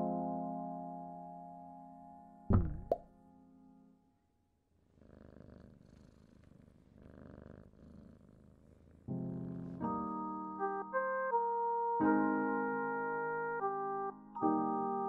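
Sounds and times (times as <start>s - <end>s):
sharp cartoon plop: 2.5s - 3.0s
cat purring: 4.7s - 9.9s.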